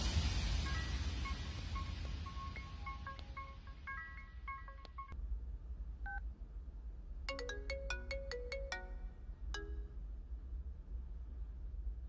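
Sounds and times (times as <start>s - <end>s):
low steady hum: 0.0s - 12.0s
phone ringtone beeping melody: 0.8s - 5.2s, 7.3s - 9.9s.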